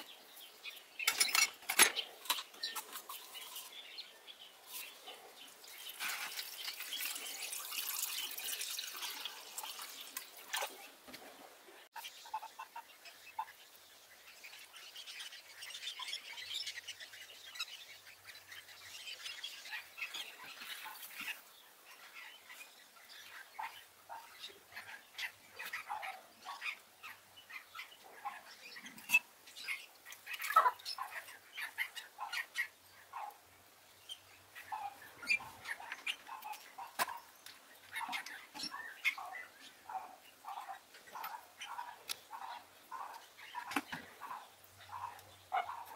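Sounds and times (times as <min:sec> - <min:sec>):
liquid splashing and dripping: 0:05.7 - 0:10.8.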